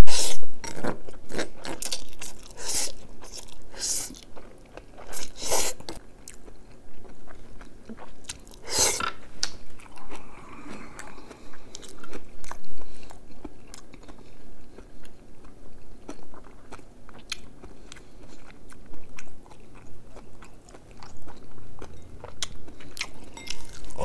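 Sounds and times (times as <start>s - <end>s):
close chewing with wet mouth clicks: 0.6s - 24.0s.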